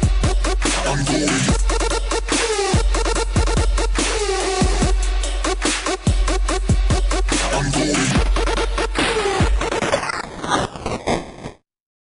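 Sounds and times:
electronic dance music: 0.0 - 11.6.

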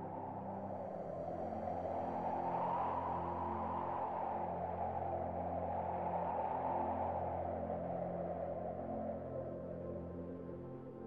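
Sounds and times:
rushing wind-like noise: 0.0 - 11.0.

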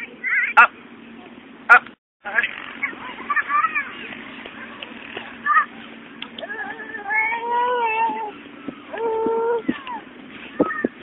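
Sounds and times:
toddler wordless calls: 6.4 - 11.0.

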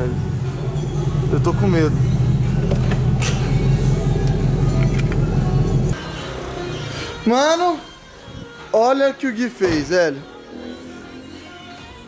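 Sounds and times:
car engine idling: 0.0 - 6.0
music playing: 0.0 - 12.0.

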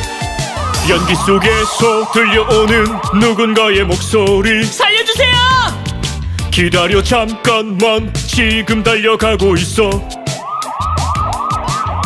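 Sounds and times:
police siren yelps: 0.1 - 5.8, 10.0 - 12.0
children's song backing music: 0.7 - 5.8.

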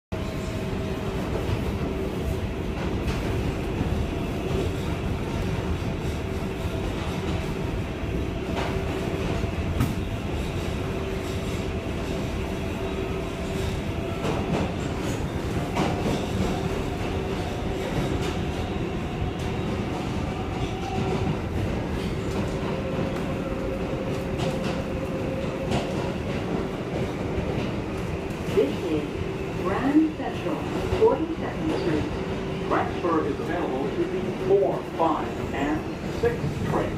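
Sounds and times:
subway wheels rumbling on rail: 0.1 - 36.9.

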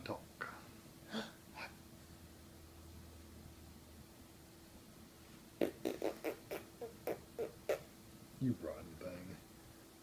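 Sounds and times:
squeaky mouth noises: 5.6 - 8.0.

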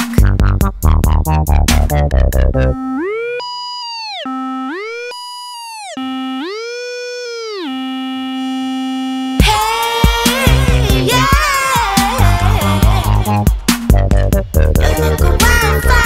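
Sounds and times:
electronic pop music: 0.0 - 16.0
synthesizer tone sliding up and down: 1.3 - 9.8.

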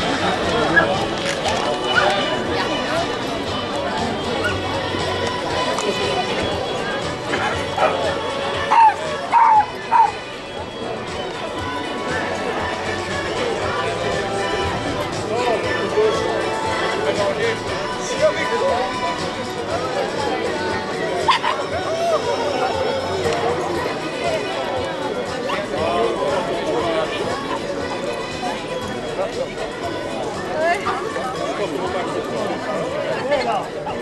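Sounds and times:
background music: 0.0 - 34.0
background voices: 0.0 - 34.0
dog barking: 8.7 - 10.1.

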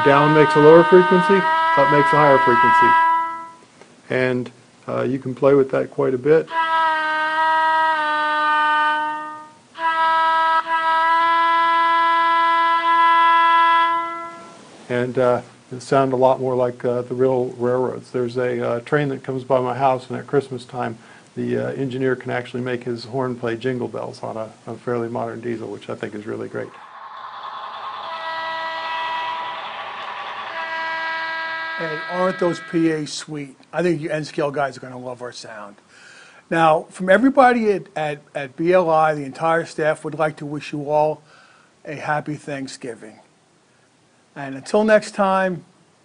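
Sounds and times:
model locomotive horn blasts: 0.0 - 3.6, 7.9 - 11.5, 13.8 - 14.6, 27.8 - 33.1.

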